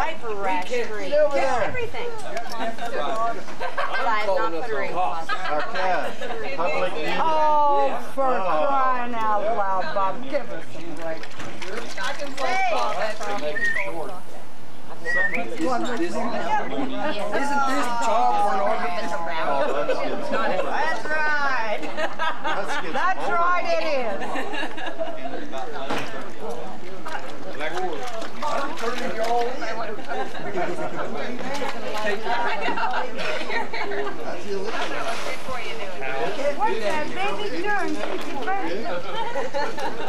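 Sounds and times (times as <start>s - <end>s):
overlapping indistinct conversation: 0.0s - 40.0s
people talking and exclaiming: 0.0s - 40.0s.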